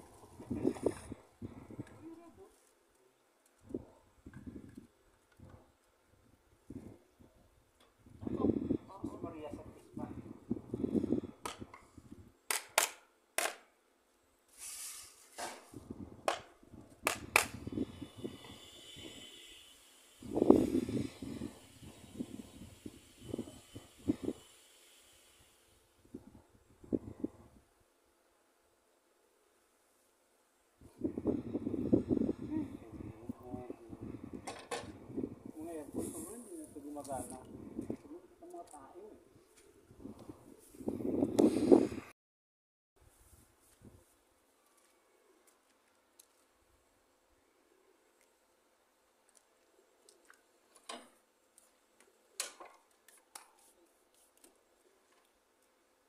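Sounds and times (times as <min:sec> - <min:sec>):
brief hiss: 0:14.5 - 0:15.8, 0:17.4 - 0:26.0.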